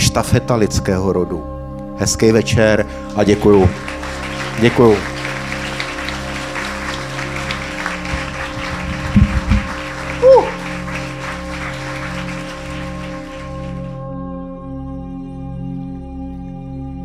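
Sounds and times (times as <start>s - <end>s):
soft music with held tones: 0.0s - 17.0s
audience applauding: 2.8s - 14.0s
loud knocks: 8.8s - 9.7s
short falling shout: 10.1s - 10.8s.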